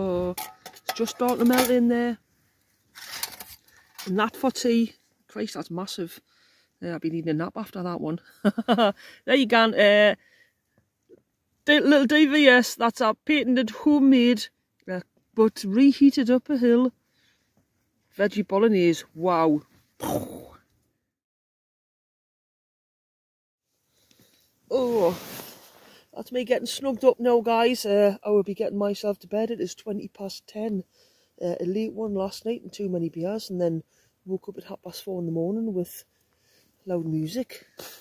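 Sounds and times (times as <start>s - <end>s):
pot scraping and rustling: 0.1s - 2.1s, 2.8s - 4.6s, 24.7s - 27.0s.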